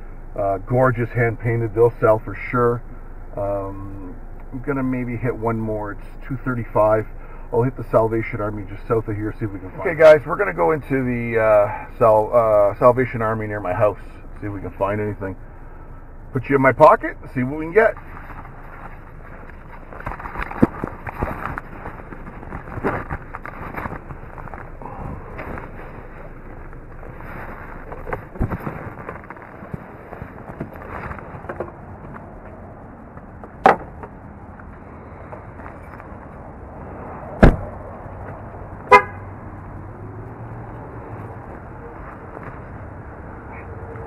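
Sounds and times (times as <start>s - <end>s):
camera handling rustling: 18.0s - 24.8s
car door shutting: 37.4s - 37.7s
car horn short toot: 38.9s - 39.3s.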